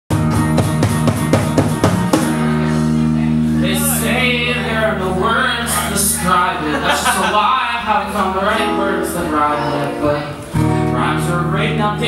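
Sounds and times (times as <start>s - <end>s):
electric guitar and bass chord: 0.1s - 6.6s
cajon hit: 0.3s - 2.5s
man's voice: 2.9s - 12.0s.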